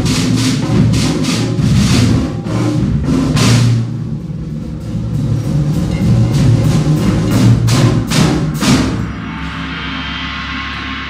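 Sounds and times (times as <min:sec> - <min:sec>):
low drum rumble: 0:00.0 - 0:11.0.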